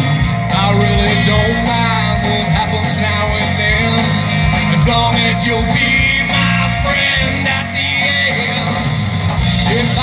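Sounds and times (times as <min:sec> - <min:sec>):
bass: 0:00.0 - 0:10.0
drum kit beat: 0:00.0 - 0:10.0
electric guitars: 0:00.0 - 0:10.0.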